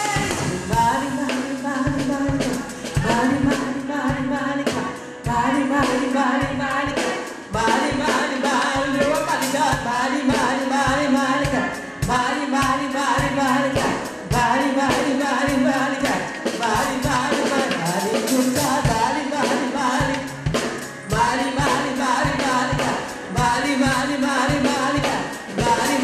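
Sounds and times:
steady percussive beat: 0:00.0 - 0:26.0
woman singing into a microphone: 0:00.0 - 0:26.0.

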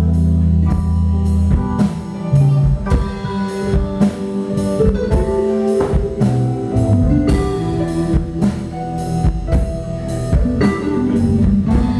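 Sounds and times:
live rock band playing: 0:00.0 - 0:11.9.

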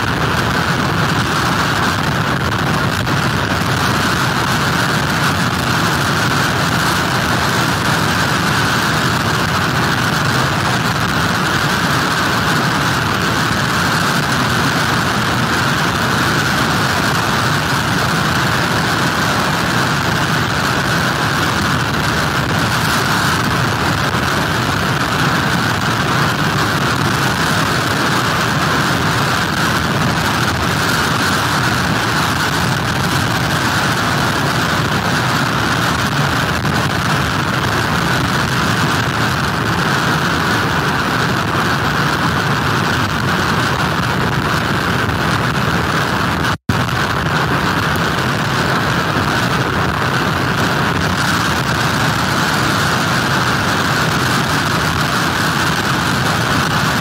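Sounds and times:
hurricane wind: 0:00.0 - 0:57.0
rain on microphone: 0:00.0 - 0:57.0.

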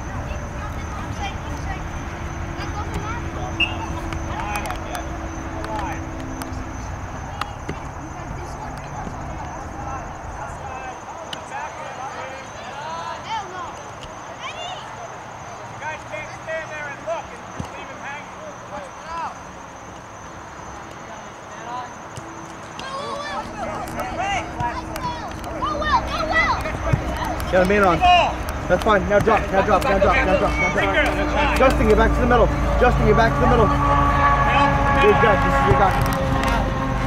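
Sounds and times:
voices calling out: 0:00.0 - 0:37.0.

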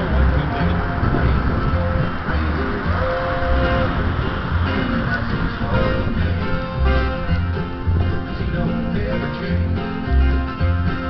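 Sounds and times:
acoustic guitar flatpicked rhythm: 0:00.0 - 0:11.0.

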